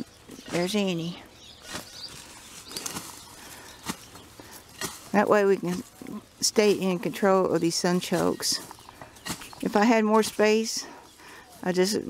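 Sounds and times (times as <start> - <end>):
faint rustling: 0.0 - 12.0.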